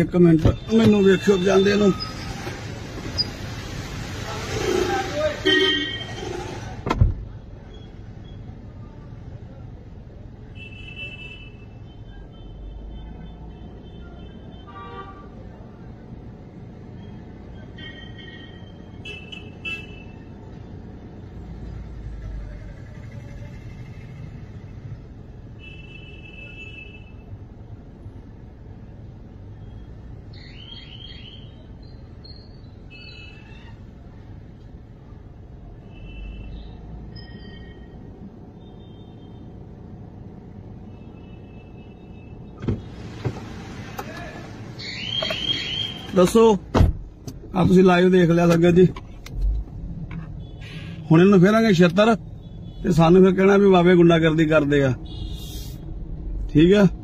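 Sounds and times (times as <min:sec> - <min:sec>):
engine and road rumble: 0:00.0 - 0:57.0
vehicle horn toots: 0:05.4 - 0:06.2.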